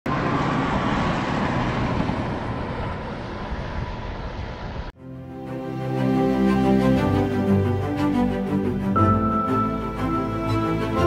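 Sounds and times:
vehicle passing on highway: 0:00.1 - 0:05.0.

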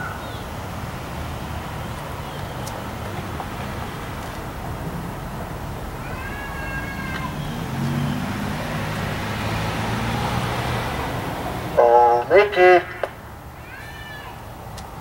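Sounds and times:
vehicle engine hum passing: 0:00.0 - 0:13.8
outdoor traffic noise: 0:00.0 - 0:15.0
high whistling chirp: 0:07.3 - 0:09.7.

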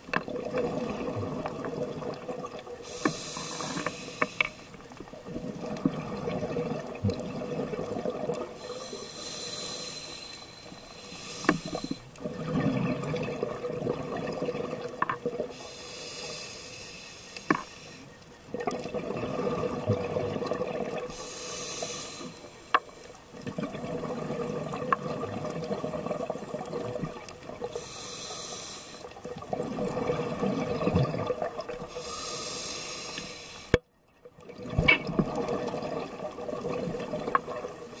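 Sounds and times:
exhaled air bubbling underwater: 0:00.0 - 0:38.0
regulator inhalation hiss: 0:02.8 - 0:04.8, 0:08.6 - 0:12.1, 0:15.5 - 0:18.1, 0:21.1 - 0:23.2, 0:27.7 - 0:29.2, 0:31.9 - 0:33.8.

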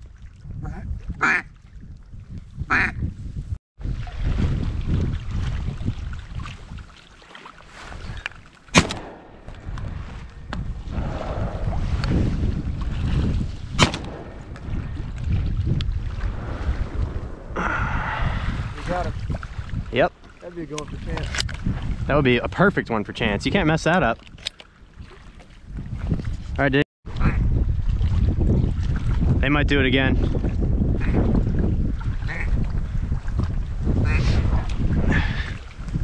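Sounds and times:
wind rumbling on microphone: 0:00.0 - 0:07.1, 0:07.7 - 0:36.0
ducks quacking: 0:01.2 - 0:01.5, 0:02.7 - 0:03.0, 0:34.0 - 0:34.4
shotgun shots: 0:08.7 - 0:09.8, 0:13.8 - 0:14.8.

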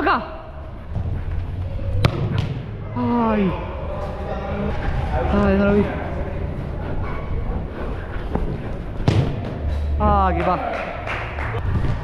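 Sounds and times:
football being kicked: 0:09.0 - 0:09.6.

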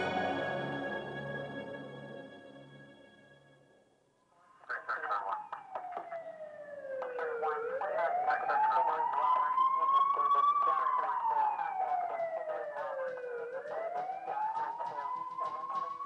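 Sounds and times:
siren wailing: 0:04.7 - 0:16.0.

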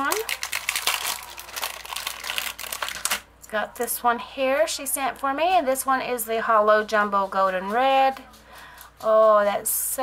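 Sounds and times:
plastic bag crinkling: 0:00.0 - 0:03.3.

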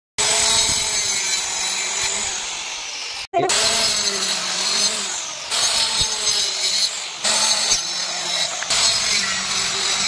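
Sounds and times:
circular saw cutting wood: 0:00.2 - 0:10.0.

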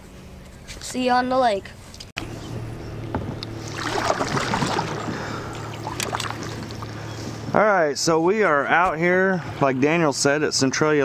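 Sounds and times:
low hum: 0:01.7 - 0:10.2
water lapping against kayak hull: 0:03.1 - 0:07.5.

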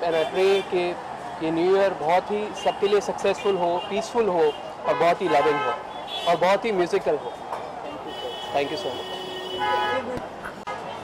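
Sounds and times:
vehicle horn honk: 0:08.1 - 0:10.1.

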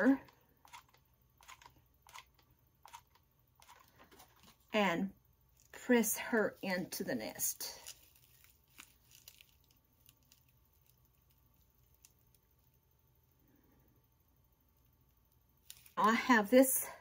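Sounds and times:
faint crackling of dry twigs: 0:07.8 - 0:12.4.

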